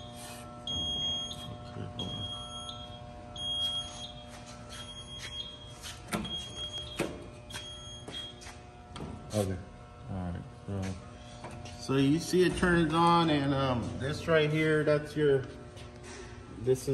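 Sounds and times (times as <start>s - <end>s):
high alarm beeps: 0.0s - 8.5s
low electrical hum: 0.0s - 16.9s.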